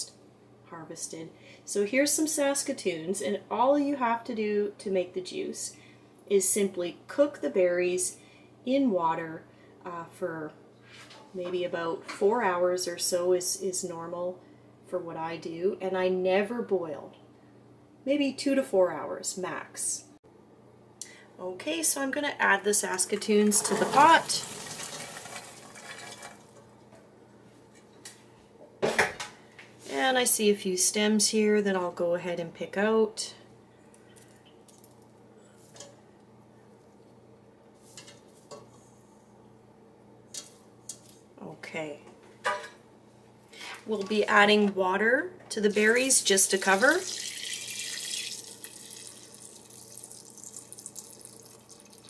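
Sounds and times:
water pouring into a pot: 23.1 - 26.6, 45.7 - 52.0.

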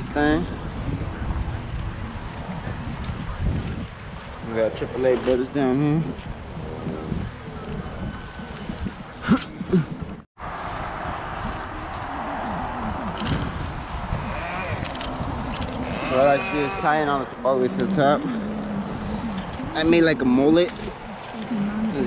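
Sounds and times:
wind noise on microphone: 0.0 - 22.0.

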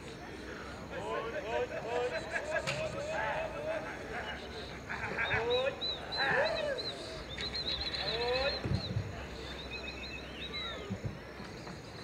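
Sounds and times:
birds chirping and whistling: 5.2 - 10.9.

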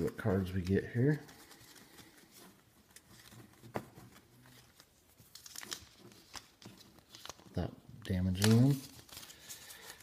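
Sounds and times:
wrapper crinkling and tearing: 2.8 - 10.0.

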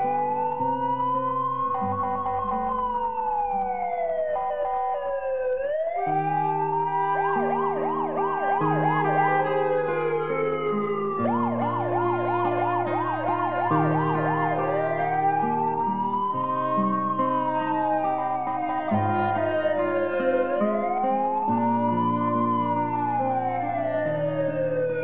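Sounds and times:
ambulance siren wailing and yelping: 0.0 - 25.0.

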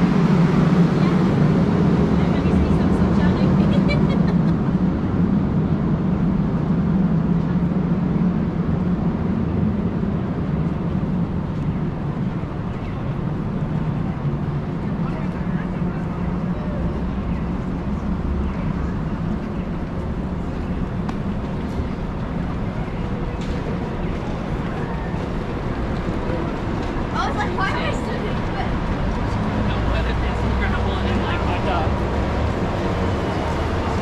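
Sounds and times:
indistinct voices of passers-by: 0.0 - 34.0
traffic rumble: 0.0 - 34.0.

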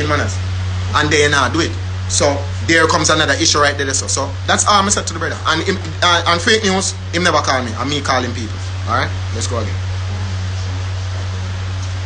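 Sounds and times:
even hiss: 0.0 - 12.0
steady low hum: 0.0 - 12.0.

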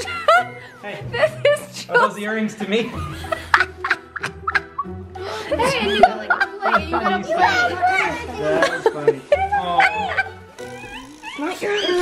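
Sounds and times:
children squealing and shrieking: 9.8 - 12.0.

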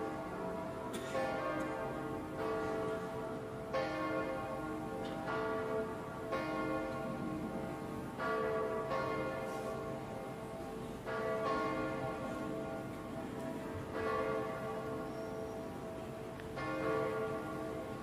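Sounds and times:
church bells ringing: 0.0 - 18.0.

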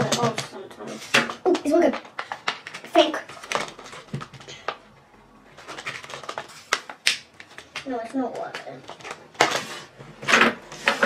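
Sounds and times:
plastic packaging crinkling: 2.0 - 4.8, 5.5 - 7.9.

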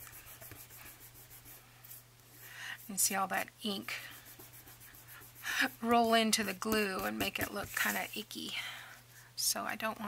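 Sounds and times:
woman's voice: 2.8 - 4.2, 5.6 - 8.8, 9.4 - 10.0.

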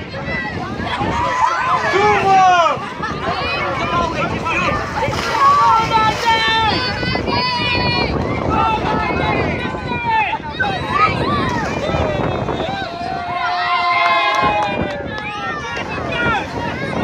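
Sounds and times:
crowd shouting and calling: 0.0 - 17.0.

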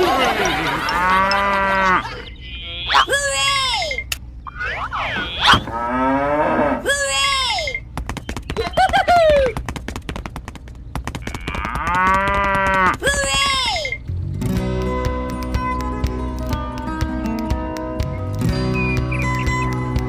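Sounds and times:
cartoon cow mooing: 0.9 - 3.6, 4.9 - 7.4
plucked guitar music: 14.1 - 20.0.

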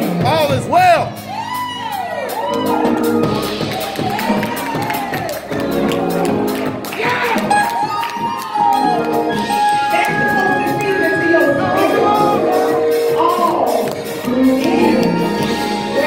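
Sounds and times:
keyboard chords: 0.0 - 16.0
congregation cheering: 1.1 - 16.0
woman singing through pa: 9.8 - 16.0.

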